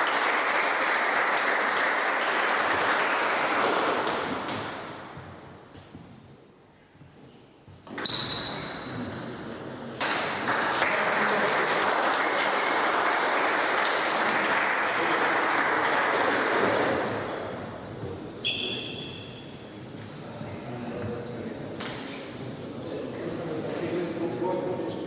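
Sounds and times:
spectators applauding: 0:00.0 - 0:04.5, 0:10.0 - 0:17.1.

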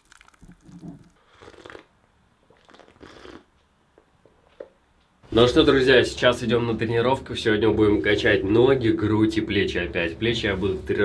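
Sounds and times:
thick shake pouring into mug: 0:00.0 - 0:01.1
short gulps: 0:00.0 - 0:01.9, 0:02.5 - 0:03.5.

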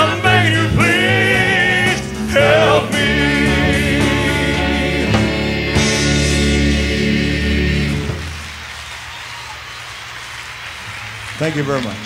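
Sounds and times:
band final chord: 0:01.1 - 0:08.3
audience applauding: 0:07.2 - 0:12.0.

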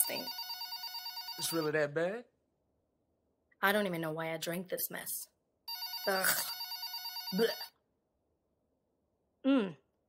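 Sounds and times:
telephone ringing: 0:00.0 - 0:01.7, 0:05.7 - 0:07.8.

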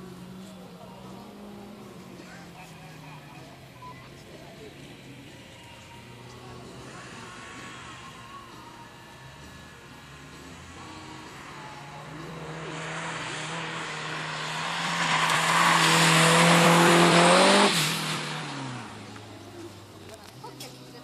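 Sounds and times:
racing car engine: 0:00.0 - 0:21.0
tyre noise on wet road: 0:10.0 - 0:21.0.

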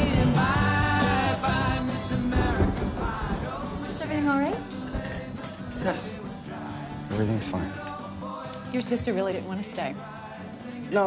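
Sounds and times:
rock and roll song on vinyl: 0:00.0 - 0:08.7.

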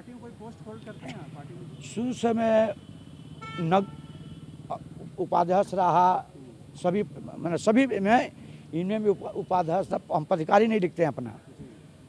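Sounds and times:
low street hum: 0:00.0 - 0:12.0
vehicle horn: 0:00.7 - 0:04.8.

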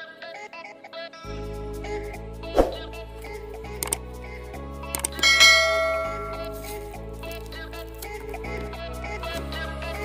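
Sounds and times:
background music: 0:00.0 - 0:10.0
bell-like chime: 0:05.2 - 0:06.8.

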